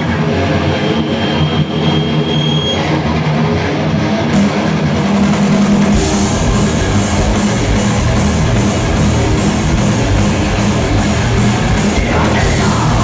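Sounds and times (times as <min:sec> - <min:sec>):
drum kit: 0:00.0 - 0:13.0
heavy metal band playing: 0:00.0 - 0:13.0.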